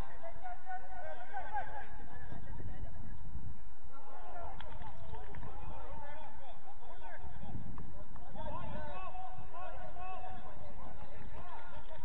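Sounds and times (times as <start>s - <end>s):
distant players shouting: 3.9s - 12.0s.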